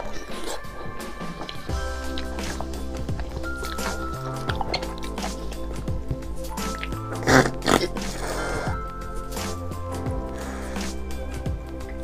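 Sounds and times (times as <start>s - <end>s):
loud slurps from bone: 0.0s - 5.7s, 6.5s - 9.7s
background music: 0.0s - 12.0s.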